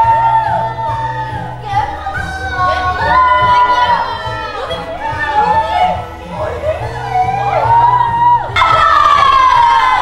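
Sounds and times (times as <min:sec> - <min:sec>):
young women whooping and shouting: 0:00.0 - 0:06.0, 0:06.7 - 0:10.0
music playing: 0:00.0 - 0:10.0.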